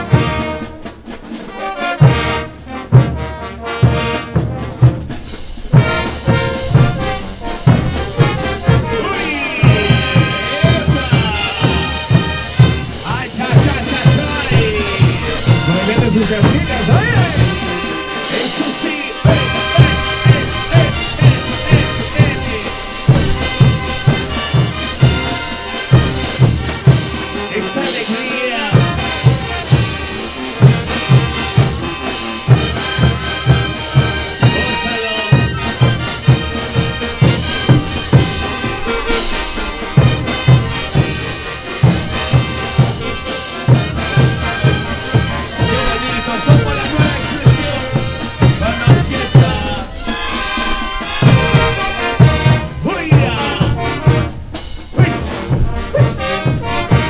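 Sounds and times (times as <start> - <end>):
bass drum and cymbal beat: 0.0 - 57.0
brass band playing: 0.0 - 57.0.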